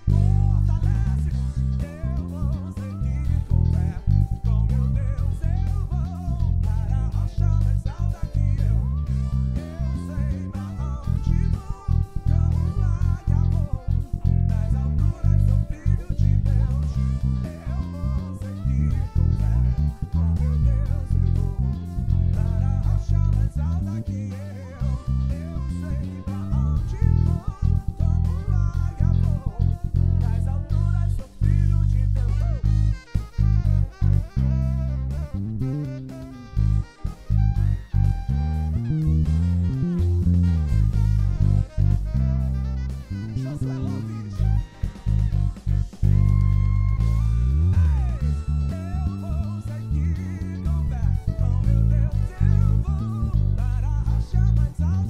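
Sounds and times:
electric bass plucked: 0.0 - 55.0
band backing track with drums: 40.1 - 43.2, 44.3 - 48.2.

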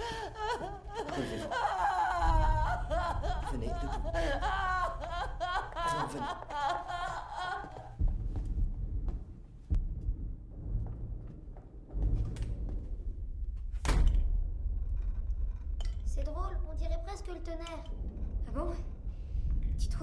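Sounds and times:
woman sobbing: 0.0 - 8.0.

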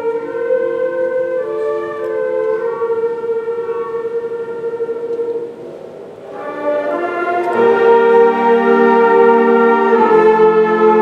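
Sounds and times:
woodwinds holding a sustained note: 0.0 - 11.0.

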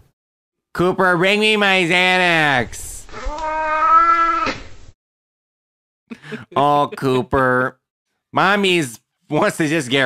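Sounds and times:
cat meowing: 3.1 - 4.6.

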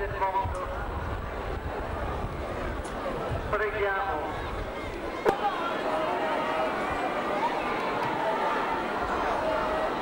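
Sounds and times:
large outdoor crowd noise: 0.0 - 10.0.

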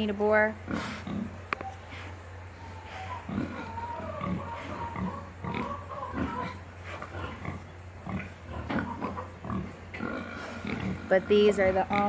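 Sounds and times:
pigs grunting: 0.6 - 12.0.

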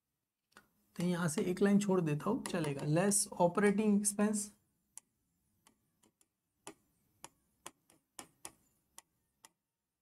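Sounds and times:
stylus tapping on touchscreen: 2.3 - 3.0, 4.9 - 9.6.

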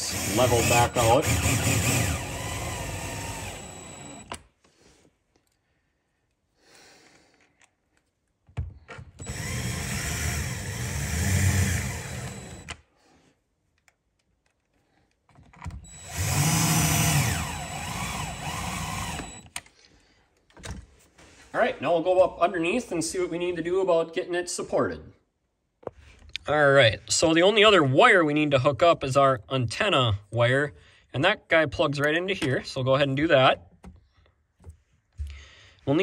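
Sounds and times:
cordless drill driving screws: 0.0 - 4.4, 9.2 - 12.8, 15.7 - 19.6.

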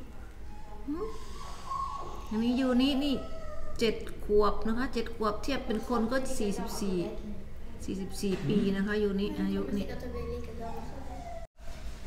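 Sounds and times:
woman speaking: 2.2 - 9.9.

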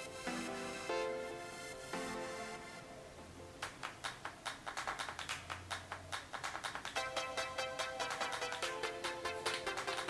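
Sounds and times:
electronic percussion beat: 3.6 - 10.0.

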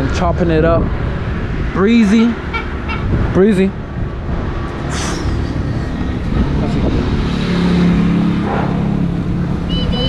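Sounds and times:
low wind rumble on microphone: 0.0 - 10.0.

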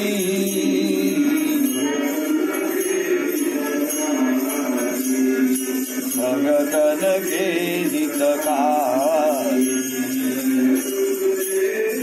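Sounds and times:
person singing devotional song: 0.0 - 12.0
small bells jingling: 0.0 - 12.0.

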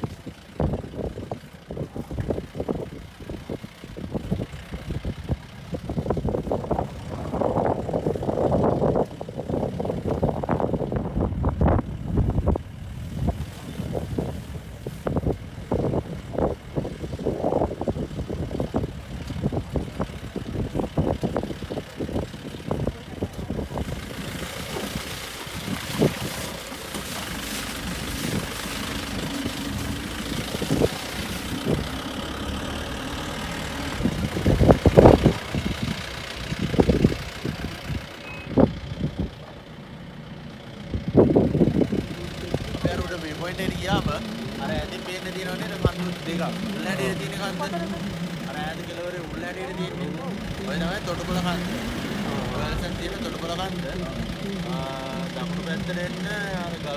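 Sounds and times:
jeep engine running: 0.0 - 56.9.

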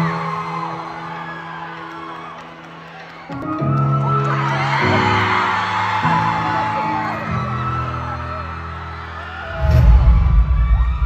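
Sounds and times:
fans whooping and screaming: 0.0 - 11.0.

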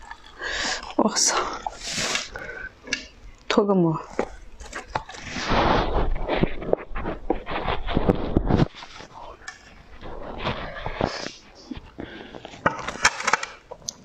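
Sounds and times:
clicks and handling noises: 2.2 - 5.7, 6.3 - 14.0
covering peeled with crackling rustle: 4.0 - 14.0.

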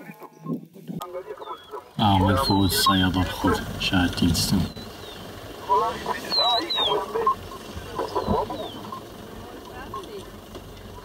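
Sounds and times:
people talking: 0.9 - 4.8, 5.6 - 10.4.

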